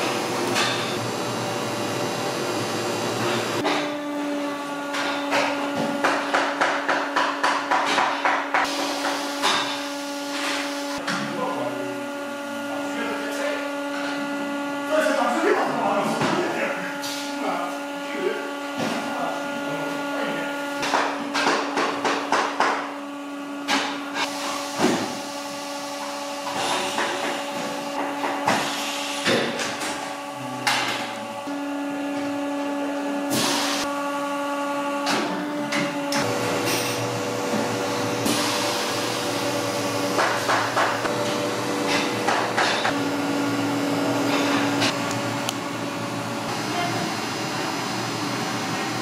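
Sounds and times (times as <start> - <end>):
steady workshop hum: 0.0 - 49.0.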